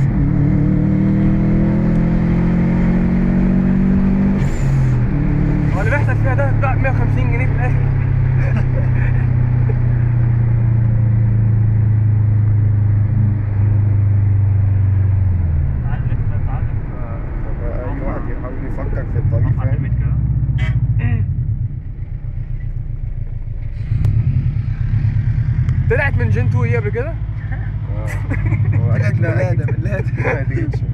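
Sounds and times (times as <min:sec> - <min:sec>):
car engine from inside cabin: 0:00.0 - 0:30.9.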